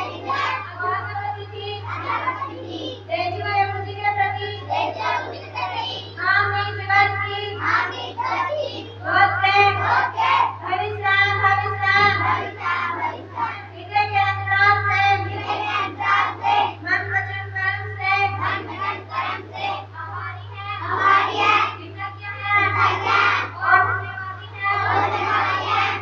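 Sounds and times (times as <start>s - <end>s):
steady low hum: 0.0s - 26.0s
young female voices singing: 0.0s - 26.0s.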